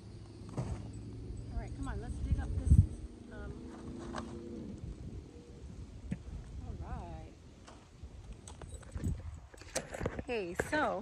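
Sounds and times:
low rumble: 0:00.8 - 0:08.3.

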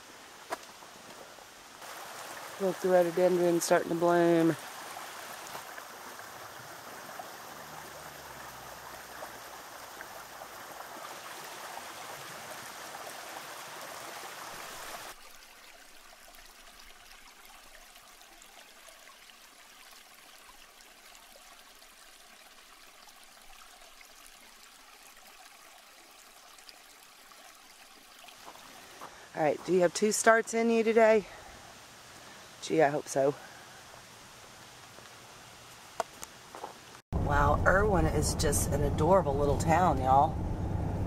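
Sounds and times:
creek water rushing over rocks: 0:00.0 - 0:30.4.

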